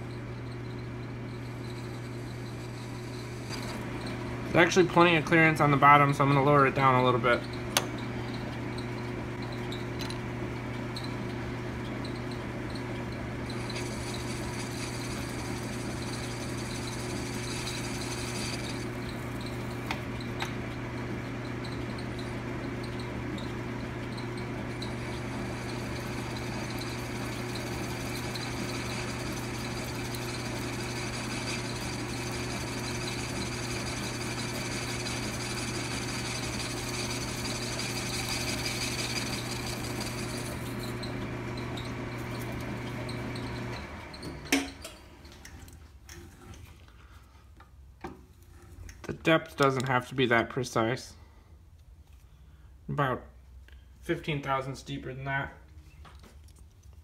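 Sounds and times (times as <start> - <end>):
lathe motor hum: 0.0 - 44.3
high lathe cutting sound: 13.5 - 19.6, 24.7 - 41.1.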